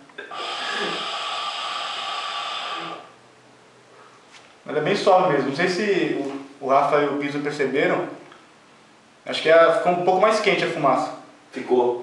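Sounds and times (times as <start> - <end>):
air drawn through hookah: 0.0 - 3.2.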